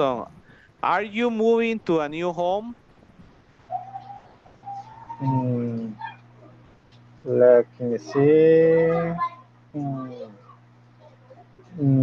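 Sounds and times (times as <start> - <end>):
man speaking: 0.0 - 2.8, 5.2 - 6.0, 7.2 - 9.2, 11.7 - 12.0
man humming hesitantly: 11.7 - 12.0.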